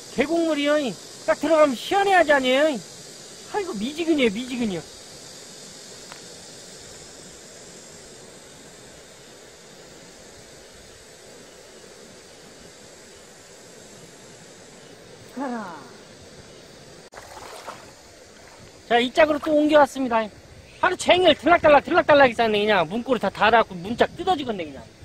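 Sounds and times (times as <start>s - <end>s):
insects droning: 0.0s - 25.0s.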